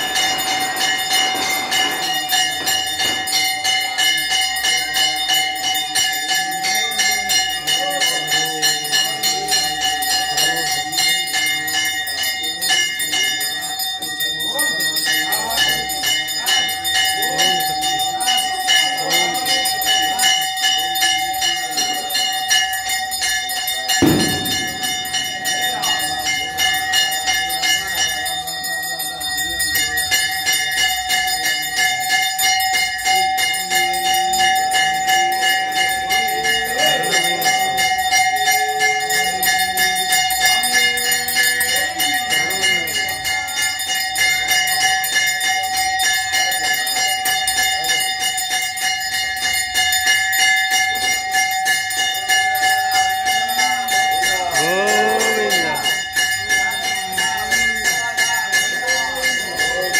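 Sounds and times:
temple bells ringing rapidly: 0.0s - 59.9s.

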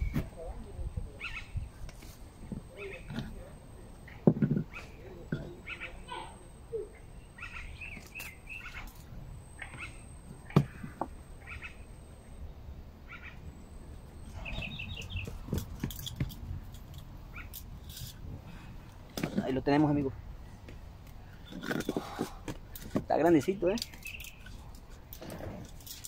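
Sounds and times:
birds chirping: 0.0s - 26.0s.

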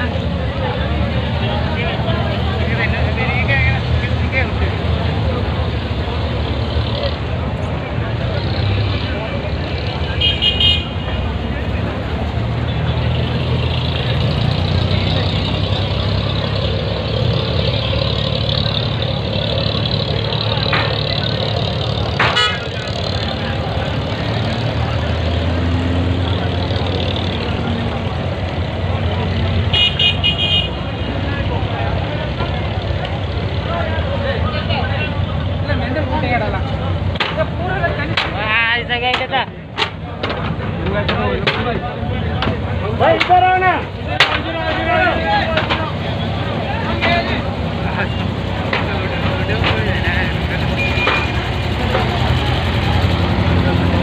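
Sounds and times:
diesel boat engines droning: 0.0s - 54.0s.

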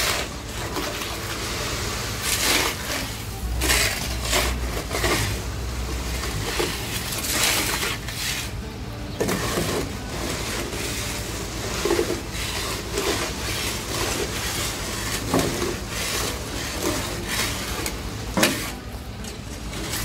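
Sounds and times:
diesel engine idling: 0.0s - 20.0s
tool scraping gravel from steel bed: 0.0s - 20.0s.

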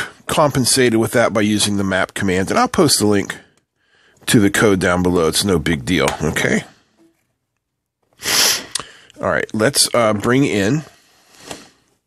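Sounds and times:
man's hissing burst of breath: 8.2s - 9.1s.

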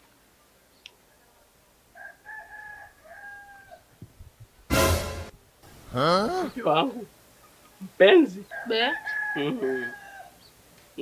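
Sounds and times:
rooster crowing: 1.9s - 3.9s, 8.4s - 10.4s.

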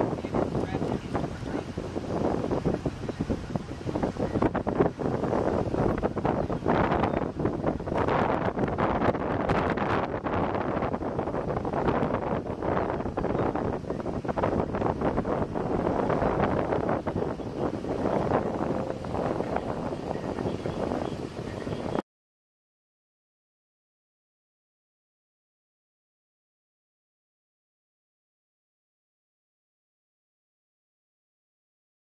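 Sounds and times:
gusty wind buffeting microphone: 0.0s - 22.0s.

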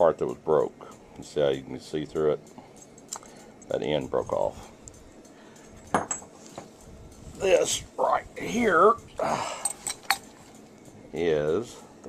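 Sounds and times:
light ticks: 4.8s - 5.7s.

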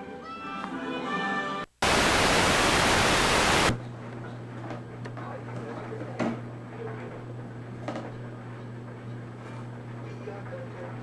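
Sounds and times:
videotape static hiss: 1.7s - 3.8s.

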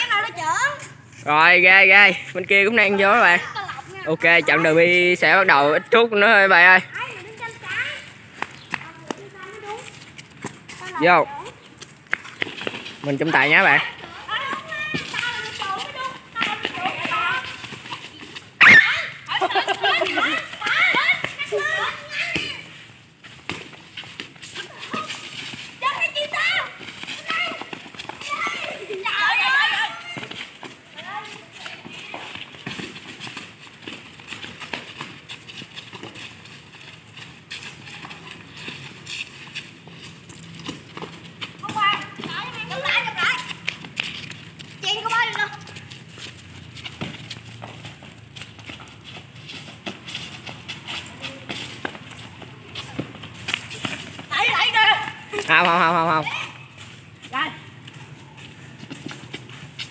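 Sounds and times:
boys calling out: 0.0s - 8.2s, 13.2s - 22.8s, 24.4s - 32.5s, 41.6s - 43.7s, 44.7s - 46.0s, 51.0s - 58.8s
running feet on hard ground: 0.0s - 59.9s.

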